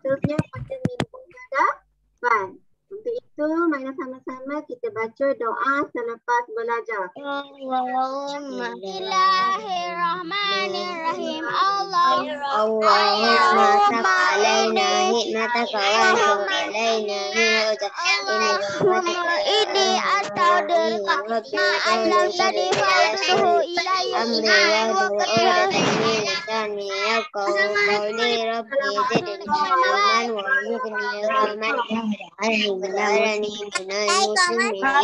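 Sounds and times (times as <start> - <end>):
children chanting a prayer: 7.2 - 35.0.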